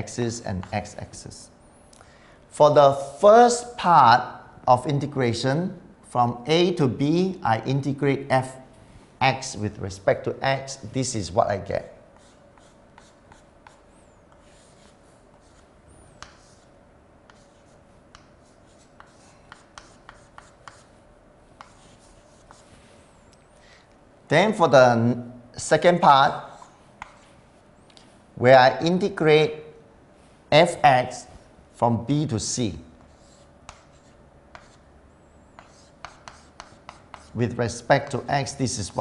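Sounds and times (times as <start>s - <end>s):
chalk tapping on board: 12.2s - 15.6s, 16.2s - 16.7s, 17.3s - 20.9s, 21.6s - 22.7s, 26.6s - 27.3s, 33.0s - 34.8s, 35.6s - 37.4s
chalk scratching on blackboard: 12.2s - 21.0s, 21.6s - 23.0s, 26.4s - 27.4s, 33.0s - 34.8s, 35.5s - 37.4s.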